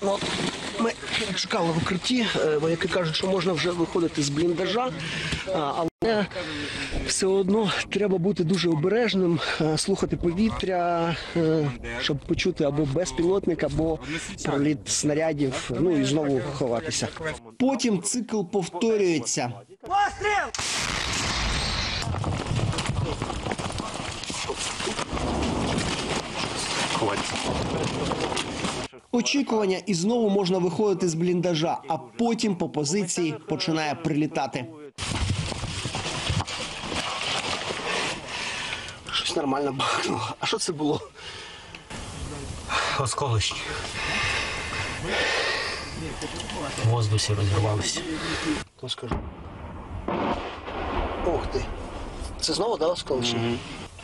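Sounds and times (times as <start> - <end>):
artillery gun shot: 20.5 - 23.7, 49.1 - 52.4
rustling through brush: 20.8 - 28.9, 35.0 - 38.6
quick running footfalls: 35.0 - 37.3.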